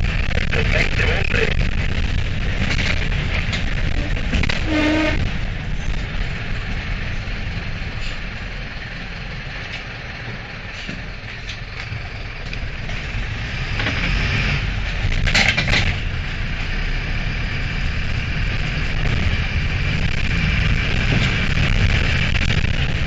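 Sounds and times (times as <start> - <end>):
bus engine low rumble: 0.0 - 23.0.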